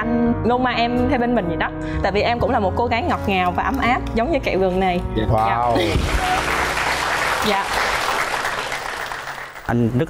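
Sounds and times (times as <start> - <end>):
audience applauding: 5.8 - 10.0.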